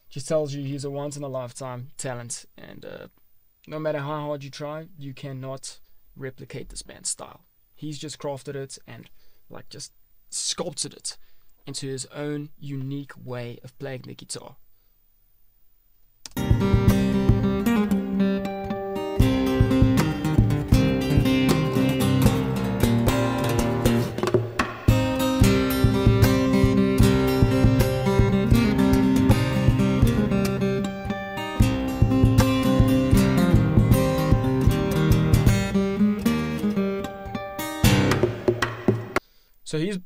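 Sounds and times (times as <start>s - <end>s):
percussive fingerstyle acoustic guitar: 16.4s - 39.2s.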